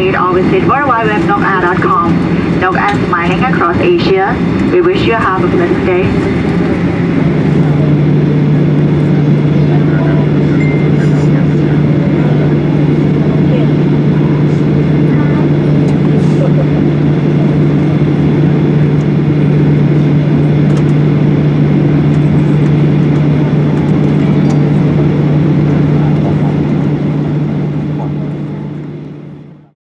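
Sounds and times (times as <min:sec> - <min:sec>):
aircraft cabin hum: 0:00.0 - 0:29.7.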